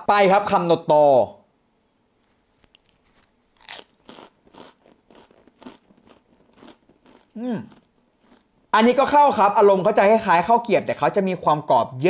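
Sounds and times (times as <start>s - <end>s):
crunchy cracker chewing: 2.5s - 8.5s.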